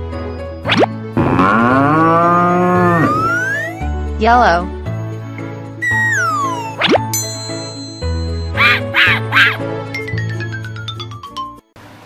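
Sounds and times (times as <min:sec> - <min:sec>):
background music: 0:00.0 - 0:11.8
cow mooing: 0:01.2 - 0:03.6
rising tone: 0:01.2 - 0:03.9, 0:05.8 - 0:07.1.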